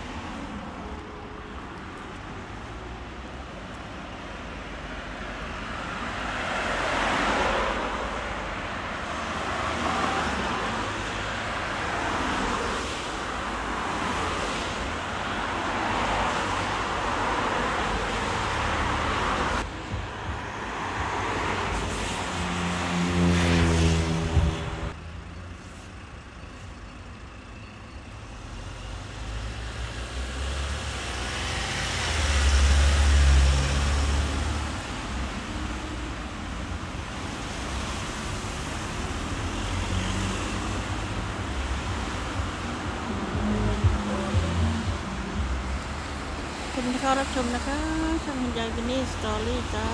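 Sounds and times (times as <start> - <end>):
passing cars rushing: 0.0 - 26.1, 28.3 - 49.9
vehicle engine hum: 0.0 - 49.9.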